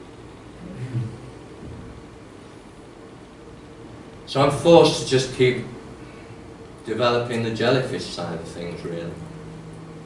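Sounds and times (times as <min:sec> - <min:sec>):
low hum with faint held tone: 0:00.0 - 0:10.0.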